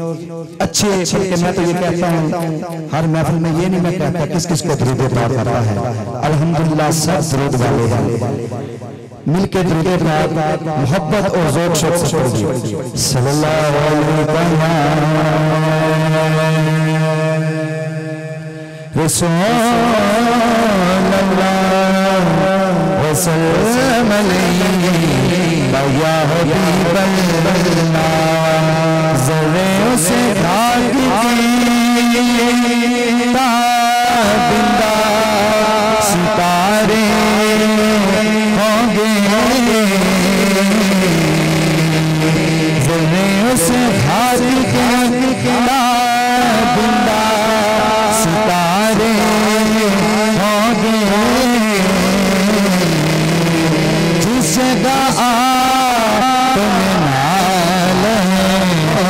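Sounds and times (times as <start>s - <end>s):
man singing a long note: 0.0s - 59.0s.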